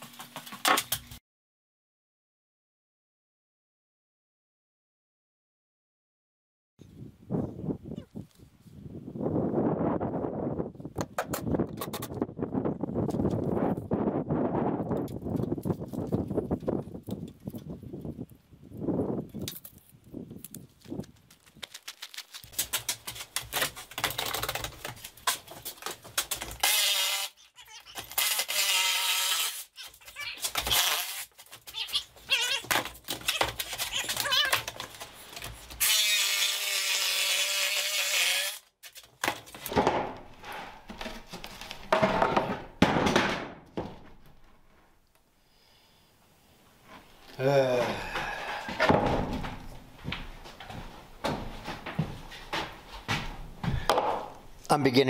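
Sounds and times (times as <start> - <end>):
wind rumbling on microphone: 6.8 - 21.6.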